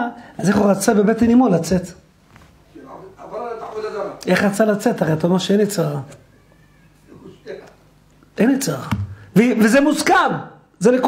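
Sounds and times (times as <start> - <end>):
low steady room hum: 0.0 - 11.0.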